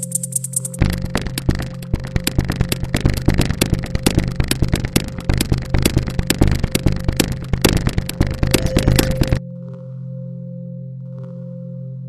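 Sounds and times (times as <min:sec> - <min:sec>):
rapid sharp cracks: 0:00.0 - 0:09.4
steady low hum: 0:00.0 - 0:09.4.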